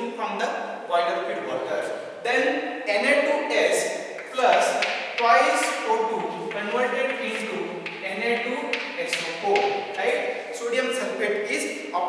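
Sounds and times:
man's voice: 0.0 - 12.0
chalk tapping on blackboard: 4.2 - 10.4.

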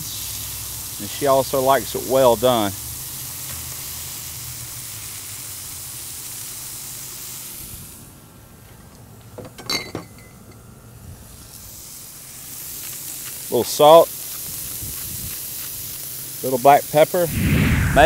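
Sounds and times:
food sizzling on a griddle: 0.0 - 8.3, 11.2 - 17.3.

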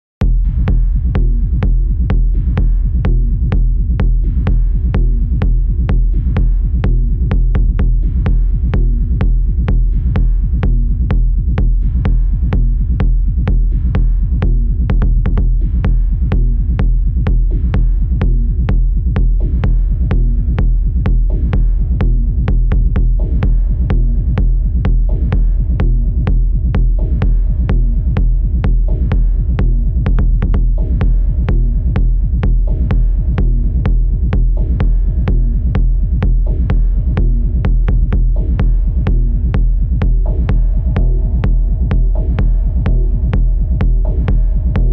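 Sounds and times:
deep droning bass: 0.2 - 44.9
kick drum: 0.2 - 44.9.

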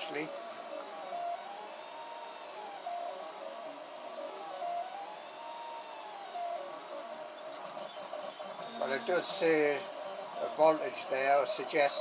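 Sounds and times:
stepper motors whining: 0.0 - 12.0.

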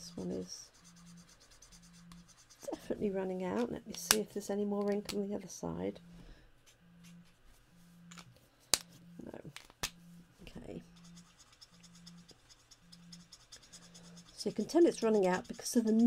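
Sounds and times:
marker scratching on card: 0.2 - 2.9, 10.9 - 16.0.

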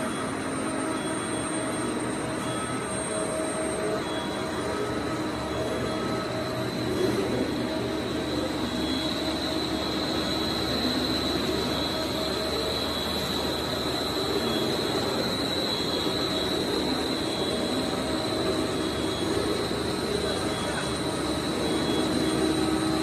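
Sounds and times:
high steady whine: 0.0 - 23.0.

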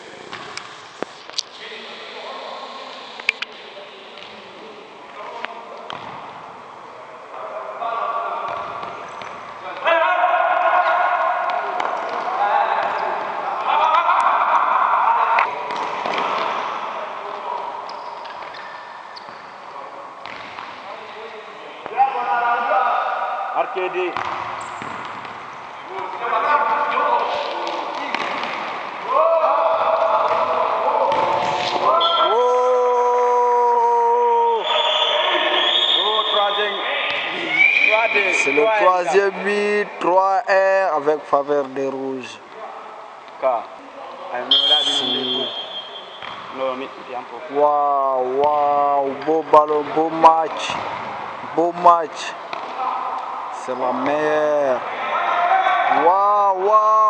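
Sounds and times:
voices shouting in a hall: 6.7 - 20.2, 25.8 - 40.6, 42.2 - 46.6, 50.0 - 57.0.

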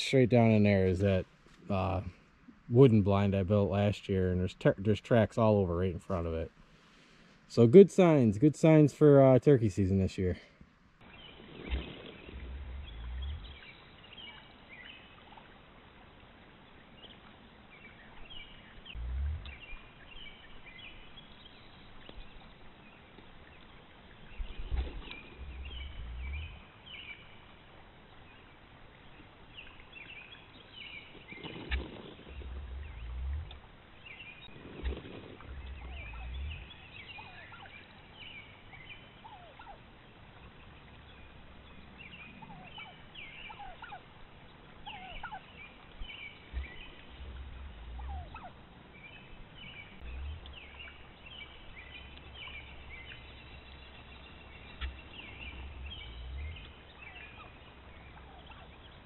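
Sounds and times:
deep low rumbles: 11.8 - 13.7, 18.8 - 20.0, 24.3 - 26.8, 32.2 - 33.7, 34.4 - 37.3, 46.1 - 48.5, 49.6 - 58.6
turkeys calling: 24.3 - 27.6, 31.2 - 41.4, 42.1 - 59.0.

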